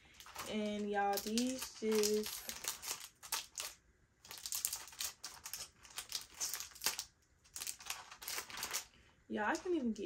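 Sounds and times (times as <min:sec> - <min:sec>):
packaging crinkling and crackling: 0:00.0 - 0:09.9.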